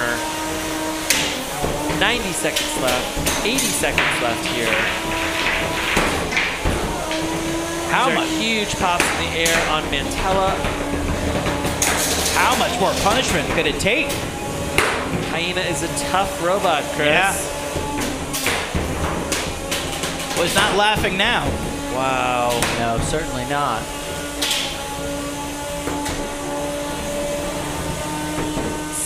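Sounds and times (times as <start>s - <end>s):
steady whine: 0.0s - 18.8s, 19.4s - 28.2s
steady hum: 0.0s - 29.0s.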